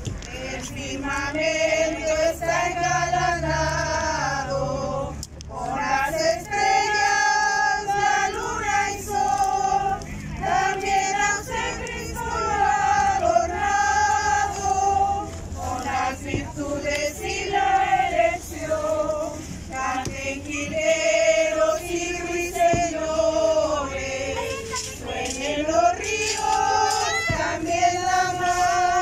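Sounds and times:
women singing a hymn: 0:00.0 - 0:29.0.

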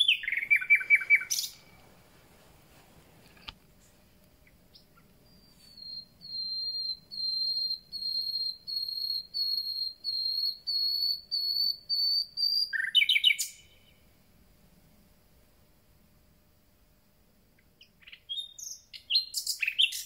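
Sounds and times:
nightingale singing: 0:00.0 - 0:01.8, 0:04.4 - 0:14.1, 0:17.6 - 0:20.0.

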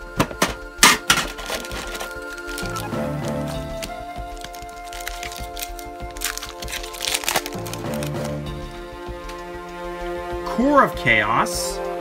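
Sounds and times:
background music: 0:00.0 - 0:12.0
foil pack crinkling and tearing: 0:00.8 - 0:08.4.

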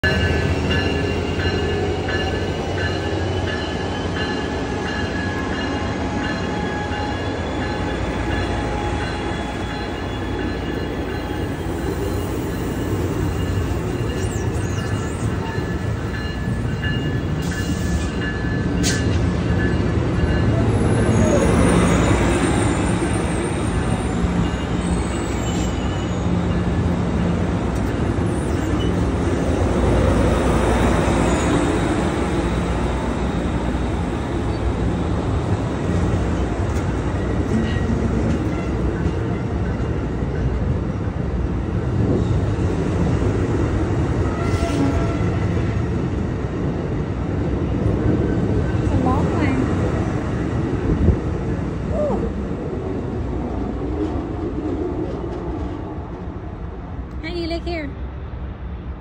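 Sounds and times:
train low rumble: 0:00.0 - 0:59.0
faint high wheel squeals: 0:12.0 - 0:16.5, 0:21.0 - 0:26.5.

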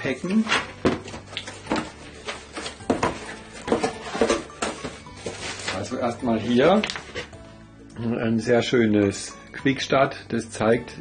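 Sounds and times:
cardboard box being opened: 0:00.4 - 0:05.9.

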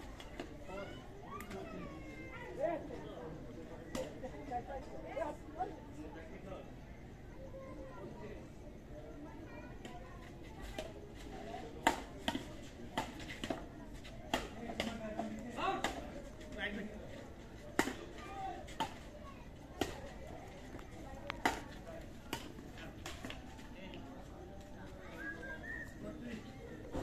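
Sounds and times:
chatter of onlookers: 0:00.0 - 0:27.0
rackets hitting shuttlecock: 0:14.3 - 0:16.1, 0:17.8 - 0:19.0, 0:21.4 - 0:21.7.

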